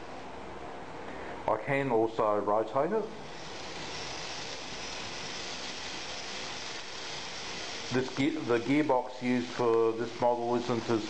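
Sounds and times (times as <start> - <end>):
geared motors whirring: 3.2 - 11.0.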